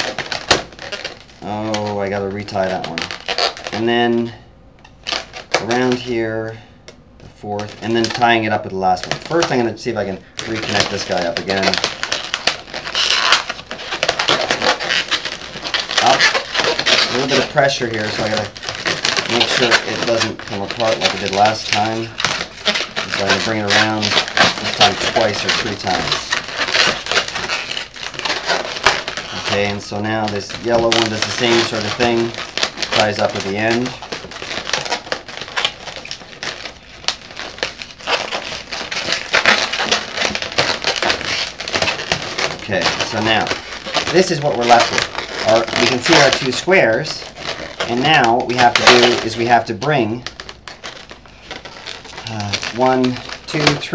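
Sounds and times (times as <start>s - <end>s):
balloons rubbing and squeaking: 0.0s - 53.9s.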